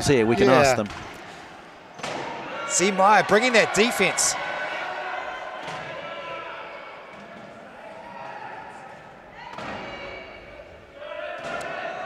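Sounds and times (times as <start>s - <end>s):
players' voices echoing: 0.0s - 12.0s.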